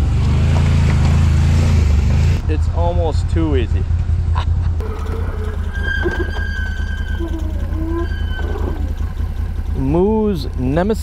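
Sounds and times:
atv engine idling: 0:02.8 - 0:11.0.

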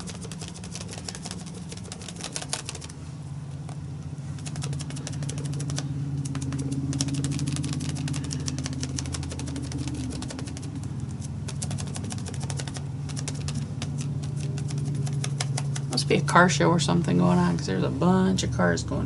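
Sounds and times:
sponge dauber tapping on paper: 0:00.0 - 0:03.0, 0:04.4 - 0:16.0
cars passing outside: 0:00.0 - 0:19.0.

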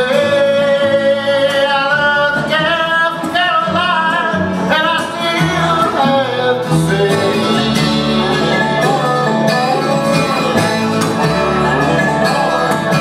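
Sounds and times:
bluegrass band playing: 0:00.0 - 0:13.0
man singing: 0:00.0 - 0:13.0.

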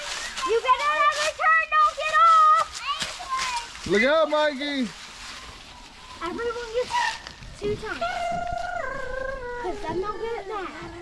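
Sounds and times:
child calling: 0:07.6 - 0:11.0.

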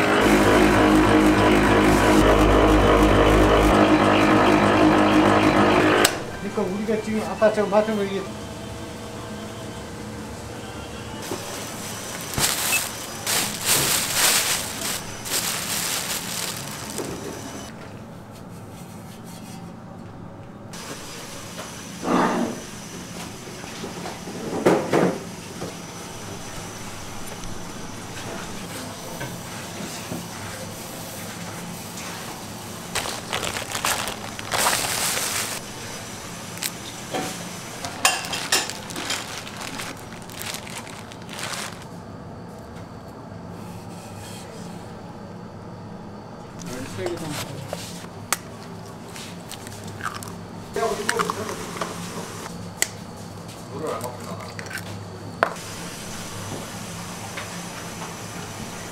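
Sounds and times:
kitchen background noise: 0:10.8 - 0:20.1, 0:20.8 - 0:41.9, 0:46.5 - 0:58.9
gloved hands mixing flour: 0:11.3 - 0:17.7, 0:32.8 - 0:35.8, 0:37.8 - 0:41.9
rice flour rustling in metal bowl: 0:11.9 - 0:17.7, 0:32.9 - 0:35.7, 0:37.8 - 0:41.9.

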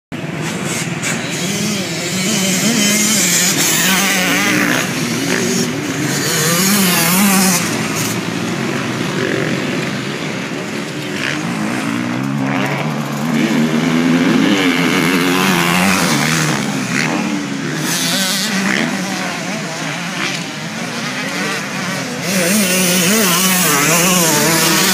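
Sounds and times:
dirt bike engines revving: 0:00.1 - 0:24.9.

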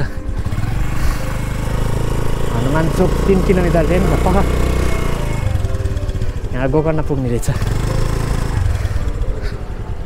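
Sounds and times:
motor scooter engine running: 0:00.0 - 0:10.0.

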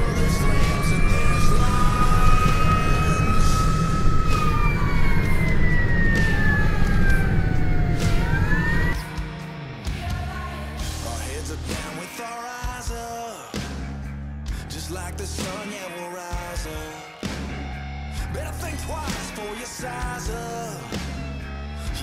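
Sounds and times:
fire engine siren wailing: 0:00.0 - 0:09.1.

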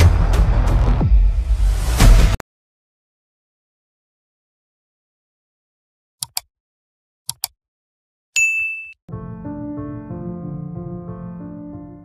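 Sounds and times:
notification bell ding: 0:08.4 - 0:09.0
soft piano music: 0:09.1 - 0:12.0.

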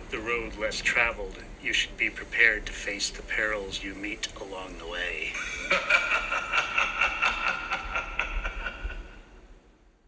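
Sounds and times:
rapid rasping laugh: 0:05.4 - 0:09.2.

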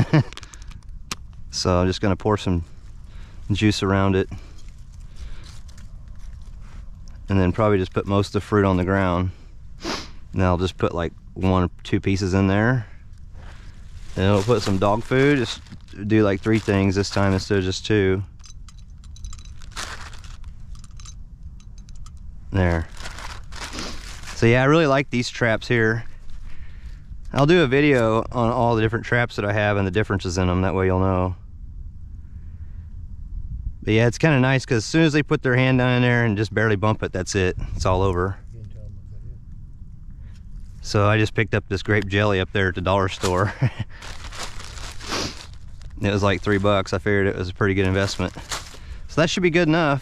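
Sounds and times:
plastic bag crinkling: 0:13.4 - 0:18.5, 0:19.1 - 0:21.1, 0:22.6 - 0:24.6, 0:43.1 - 0:47.0, 0:47.6 - 0:49.4.

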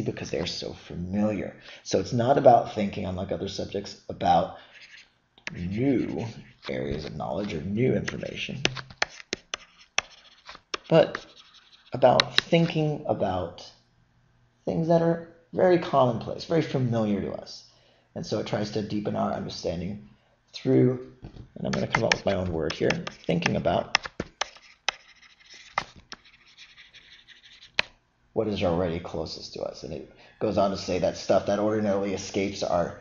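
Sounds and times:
stylus scratching on tablet: 0:04.6 - 0:12.8, 0:21.7 - 0:27.9
pen tip tapping: 0:12.2 - 0:12.6, 0:21.8 - 0:25.0.

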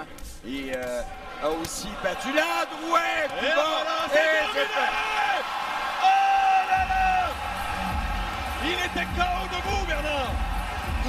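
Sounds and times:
man commentating: 0:08.6 - 0:11.0.

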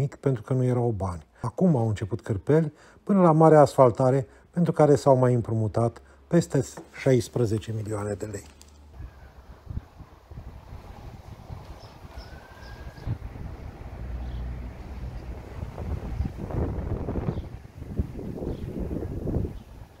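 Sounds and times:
wind buffeting microphone: 0:08.9 - 0:20.0.

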